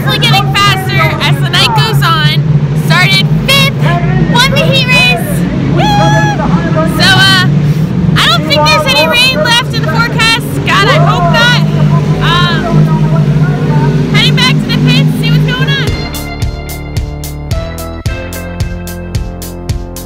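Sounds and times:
woman talking: 0.0 - 6.1, 7.0 - 7.5, 8.2 - 12.7, 14.1 - 16.0
race car engines droning: 0.0 - 18.0.

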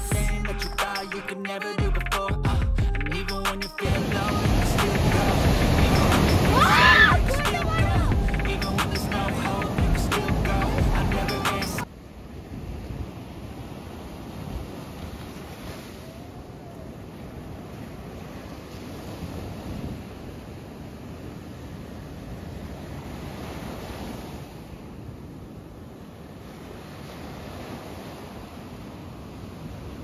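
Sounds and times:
ocean surf breaking on beach: 3.8 - 30.0.

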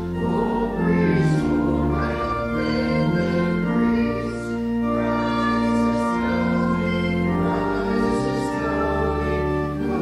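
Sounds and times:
group of voices singing: 0.0 - 4.6, 5.2 - 10.0
church organ: 0.0 - 10.0.

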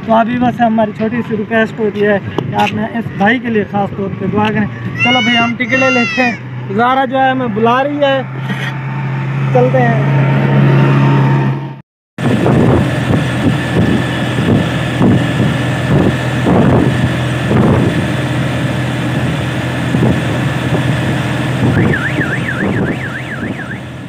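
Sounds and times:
auto-rickshaw engine running: 0.0 - 24.0
warbling siren-like tone: 21.7 - 24.0.

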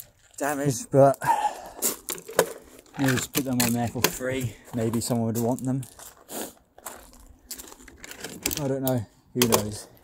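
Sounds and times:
footsteps crunching on gravel: 0.0 - 8.8.

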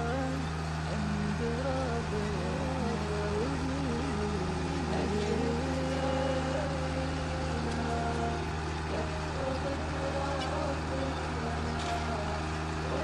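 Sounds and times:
machine engine droning: 0.0 - 13.0.

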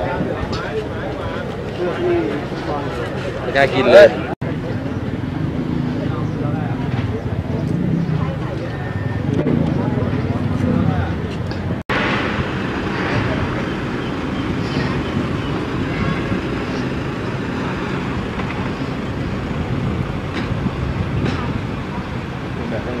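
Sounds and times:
indistinct talking: 0.0 - 23.0
traffic noise: 0.0 - 23.0.

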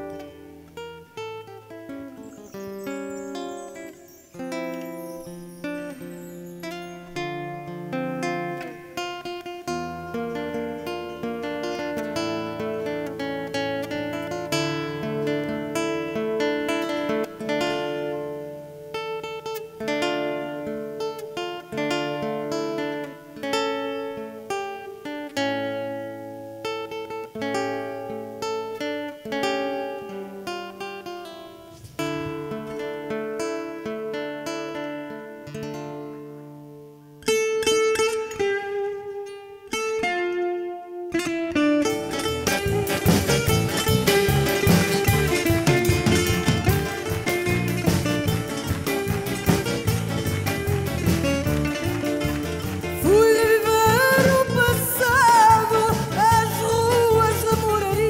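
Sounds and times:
fingerpicked classical guitar: 0.0 - 58.0
rapid bright guitar plucking: 0.0 - 58.0.

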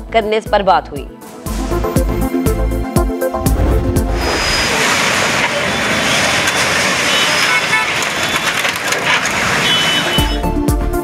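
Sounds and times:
heavy machinery: 3.4 - 10.4.

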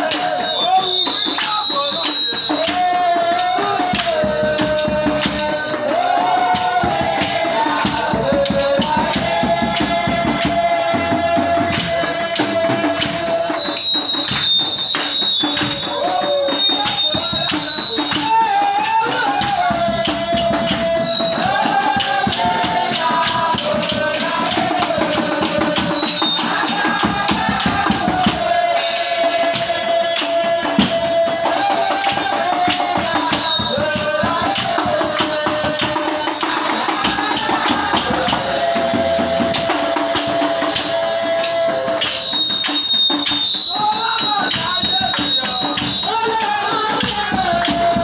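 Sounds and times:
hand percussion fast beat: 0.0 - 48.0
voices singing: 0.0 - 48.0.

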